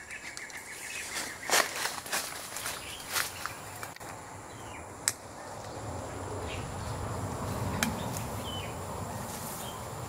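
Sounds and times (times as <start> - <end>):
plastic tape and leaves rustling: 0.0 - 4.1.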